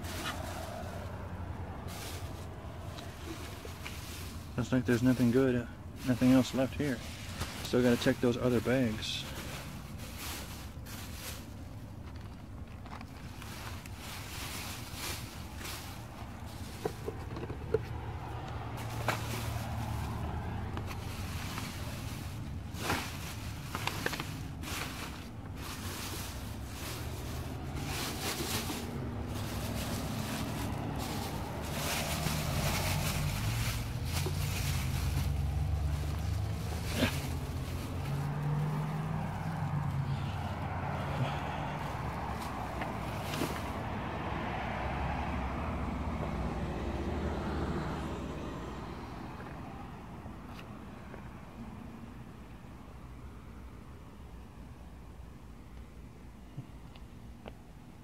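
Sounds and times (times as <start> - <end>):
plastic trash bags rustling: 0.0 - 40.0, 41.8 - 43.9
low engine rumble: 0.0 - 58.0.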